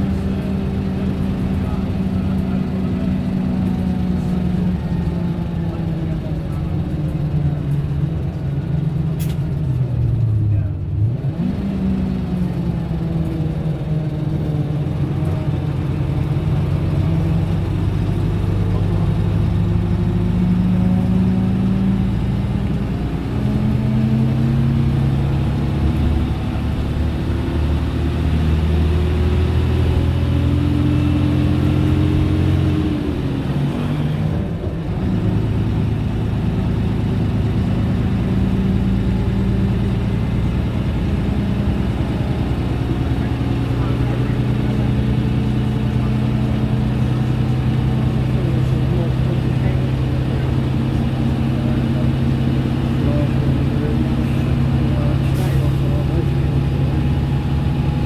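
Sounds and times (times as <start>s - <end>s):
bus diesel engine: 0.0s - 58.0s.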